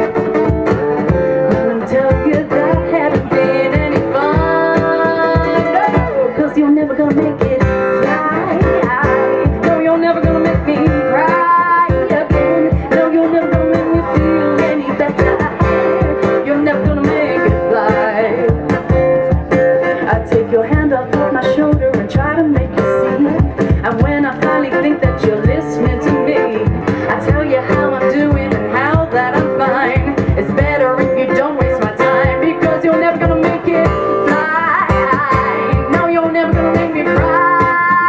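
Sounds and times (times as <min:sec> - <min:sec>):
strummed guitar: 0:00.0 - 0:38.0
woman singing: 0:00.0 - 0:38.0.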